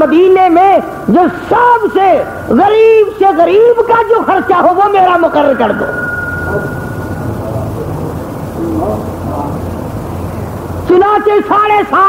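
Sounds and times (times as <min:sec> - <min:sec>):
low steady rumbling: 0:00.0 - 0:11.2.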